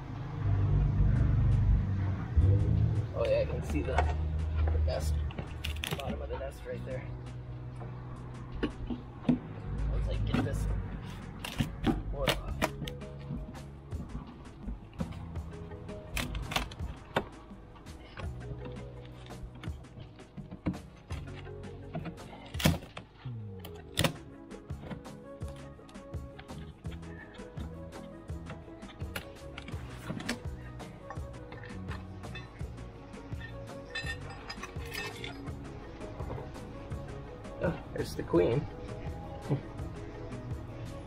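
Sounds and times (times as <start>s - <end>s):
wood cracking: 3.6s - 6.4s, 10.2s - 32.7s.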